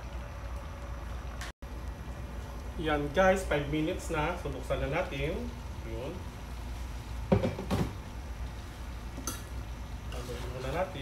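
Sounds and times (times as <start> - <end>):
steady low hum: 0.0 - 11.0
cookware knocking: 7.3 - 7.9.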